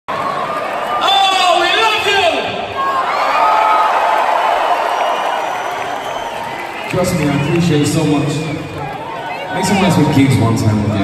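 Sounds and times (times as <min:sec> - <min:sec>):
crowd cheering and applauding: 0:00.1 - 0:11.0.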